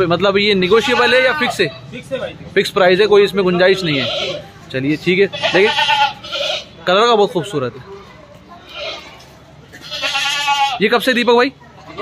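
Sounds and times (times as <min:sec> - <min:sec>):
goat bleating: 0:00.6 - 0:01.6, 0:03.5 - 0:04.6, 0:05.2 - 0:06.8, 0:08.6 - 0:11.0.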